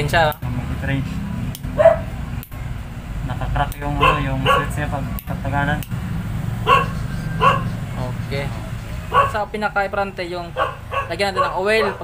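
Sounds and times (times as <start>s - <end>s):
dog barking: 1.7s - 2.1s, 4.0s - 4.8s, 6.6s - 7.8s, 9.1s - 9.4s, 10.6s - 12.0s.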